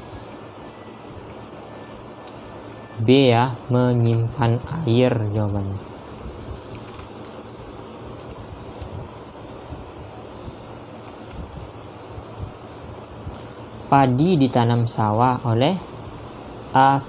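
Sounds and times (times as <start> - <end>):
background hiss: 0.0 - 17.0
low room rumble: 0.0 - 17.0.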